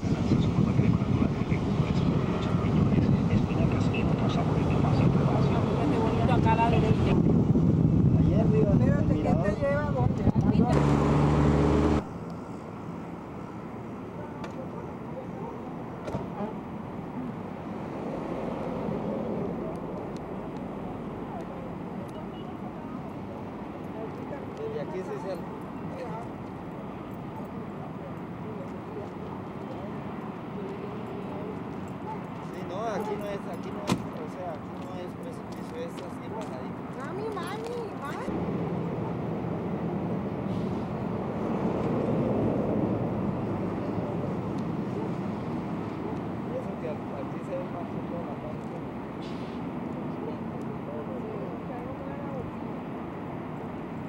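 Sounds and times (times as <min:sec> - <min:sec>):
faint distant voices: 0:12.4 - 0:17.7, 0:18.5 - 0:39.7.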